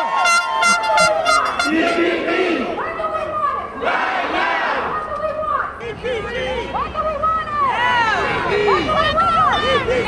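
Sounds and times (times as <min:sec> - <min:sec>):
crowd shouting and cheering: 0:00.0 - 0:06.8.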